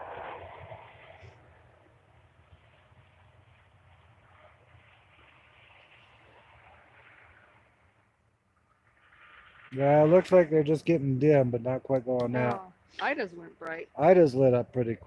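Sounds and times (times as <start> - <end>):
low rumble: 0.0 - 12.3
faint steady hiss: 0.0 - 15.0.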